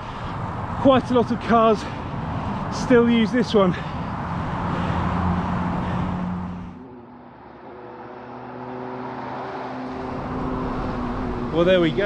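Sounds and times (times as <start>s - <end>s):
steady engine hum: 0.0s - 12.0s
car passing close by: 3.6s - 12.0s.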